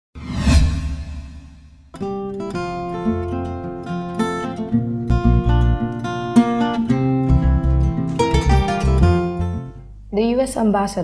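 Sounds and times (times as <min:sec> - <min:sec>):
cinematic whoosh with low boom: 0:00.2 - 0:01.9
guitar music: 0:01.9 - 0:10.0.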